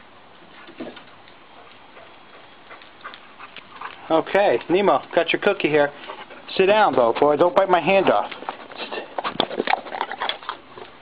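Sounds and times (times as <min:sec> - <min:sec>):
dog crunching a biscuit: 0:07.9 - 0:11.0.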